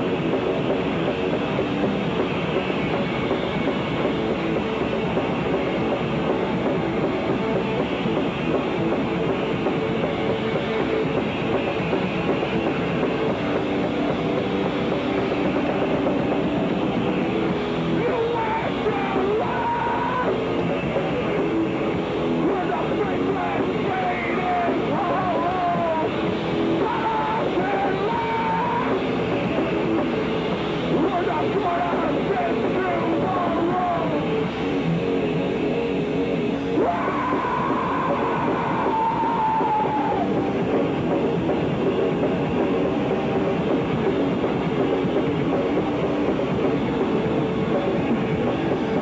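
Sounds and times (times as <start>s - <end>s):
pounding drums: 0.0s - 35.6s, 36.7s - 49.0s
distorted electric guitar and bass: 0.0s - 49.0s
noise rock band playing: 0.0s - 49.0s
person shouting vocals: 18.0s - 20.4s, 26.8s - 29.0s.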